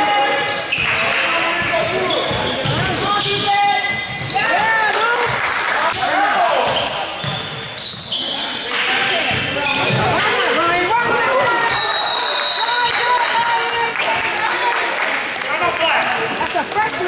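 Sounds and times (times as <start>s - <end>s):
sneakers squeaking on gym floor: 0.2s - 4.7s, 5.9s - 14.0s
basketball bouncing: 1.6s - 4.7s.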